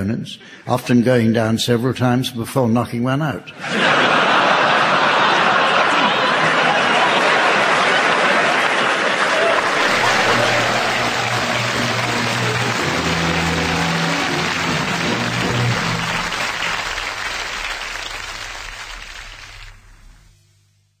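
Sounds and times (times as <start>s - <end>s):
studio audience applause: 3.8s - 20.1s
music with low sustained notes: 9.8s - 17.8s.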